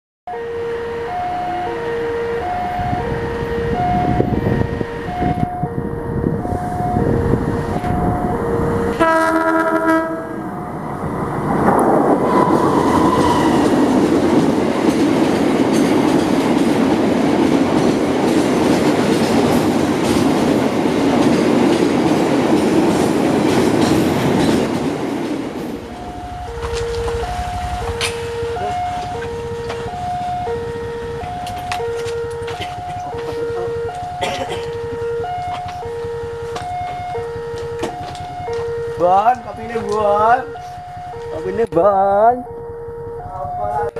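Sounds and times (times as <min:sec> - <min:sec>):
level crossing alarm two tones: 0:00.3 - 0:10.0, 0:25.7 - 0:43.9
locomotive horn blast: 0:00.3 - 0:10.8, 0:12.3 - 0:14.0, 0:25.7 - 0:41.7
train rolling past: 0:00.3 - 0:43.9.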